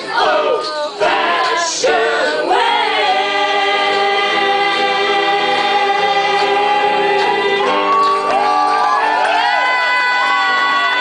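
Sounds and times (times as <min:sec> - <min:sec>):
voices singing in harmony: 0:00.0 - 0:11.0
guitars: 0:03.4 - 0:11.0.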